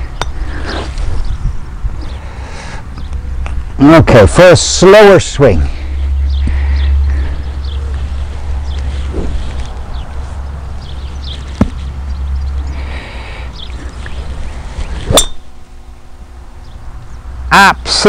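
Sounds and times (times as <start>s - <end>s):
golf club striking ball: 15.0s - 15.7s.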